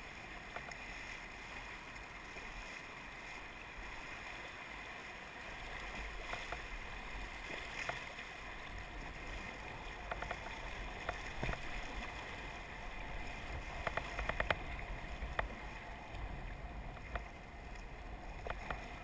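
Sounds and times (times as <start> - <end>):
paddle splashing: 0.0 - 19.0
river water rushing: 0.0 - 19.0
sharp clicks and knocks: 10.0 - 11.7, 13.8 - 14.6, 16.9 - 17.3, 18.4 - 18.9.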